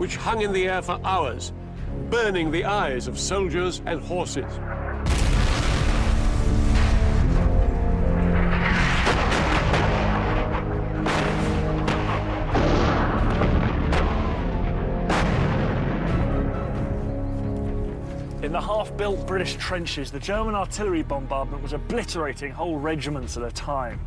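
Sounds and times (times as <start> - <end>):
dramatic music score: 0.0 - 24.0
artillery shell explosions: 5.0 - 7.6, 8.2 - 16.4.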